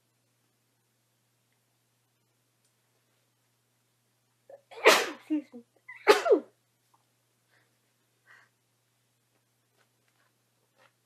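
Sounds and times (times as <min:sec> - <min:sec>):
woman sneezing: 0:04.5 - 0:06.5.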